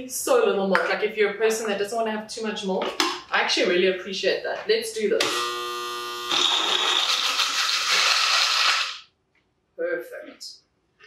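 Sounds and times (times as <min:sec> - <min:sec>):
blender motor hum: 0:05.2 - 0:09.0
ice rattling in blender: 0:06.3 - 0:09.0.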